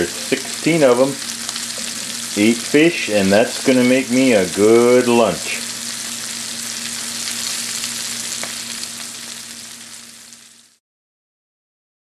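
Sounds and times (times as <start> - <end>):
fish fillets sizzling in butter: 0.0 - 10.8.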